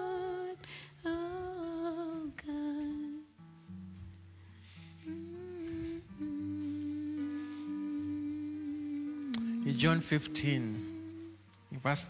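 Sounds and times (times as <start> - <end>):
soft music of long held notes: 0.0 - 12.0.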